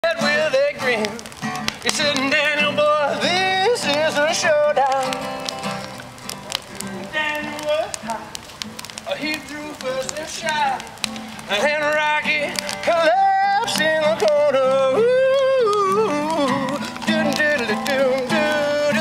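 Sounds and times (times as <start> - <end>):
acoustic guitar playing: 0.0 - 19.0
bonfire crackling and popping: 0.0 - 19.0.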